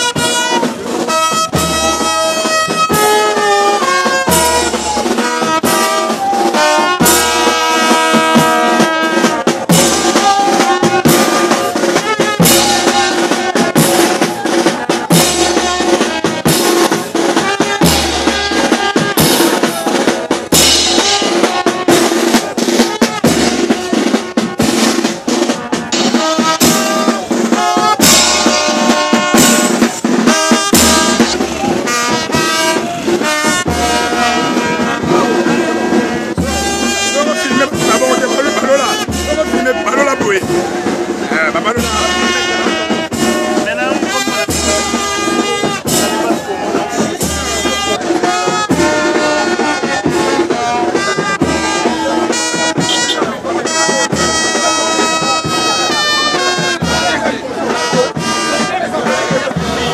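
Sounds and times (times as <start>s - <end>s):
snare and bass drums: 0.0s - 59.9s
trumpets playing tune: 0.0s - 59.9s.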